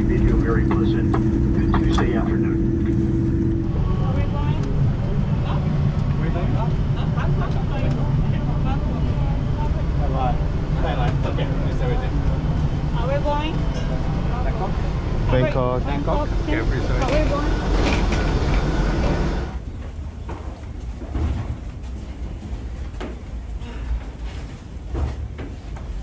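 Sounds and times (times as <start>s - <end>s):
indistinct chatter of passengers: 0.0s - 20.2s
airliner cabin rumble: 0.0s - 26.0s
steady low hum: 0.0s - 26.0s.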